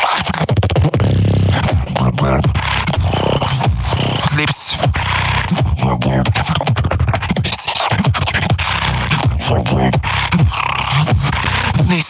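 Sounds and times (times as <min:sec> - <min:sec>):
beatboxing clicks and snare hits: 0:00.0 - 0:12.0
low vocal bass: 0:00.0 - 0:12.0.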